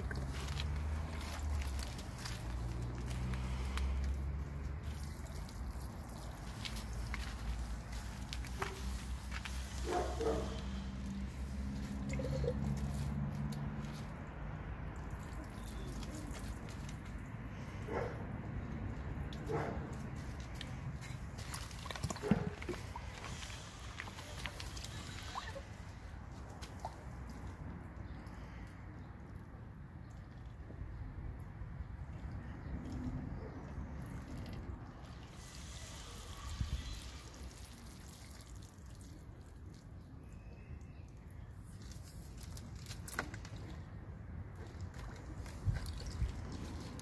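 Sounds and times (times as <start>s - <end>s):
water trickling from watering can: 0.0s - 17.6s, 19.2s - 30.6s, 32.1s - 47.0s
water sloshing in a tub: 0.0s - 18.0s, 18.9s - 30.6s, 32.0s - 40.4s, 41.5s - 47.0s.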